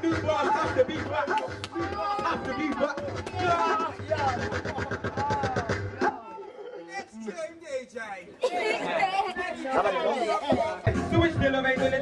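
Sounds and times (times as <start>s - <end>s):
rap beat with bass line: 0.0s - 6.2s, 10.5s - 12.0s
excited shouting voices: 0.0s - 7.3s
crowd chatter: 0.0s - 12.0s.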